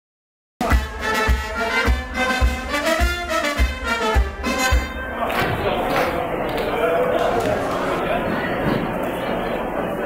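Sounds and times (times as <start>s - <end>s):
bass drum beat: 0.6s - 5.1s
brass band playing: 0.6s - 6.2s
crowd murmuring: 0.6s - 10.0s.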